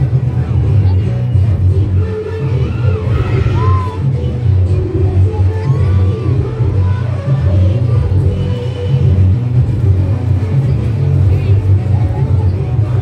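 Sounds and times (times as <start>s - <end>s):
dance music with heavy bass beat: 0.0s - 13.0s.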